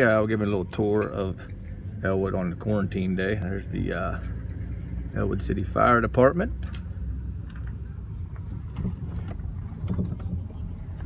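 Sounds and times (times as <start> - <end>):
car engine and tyres rumbling: 0.0 - 11.0.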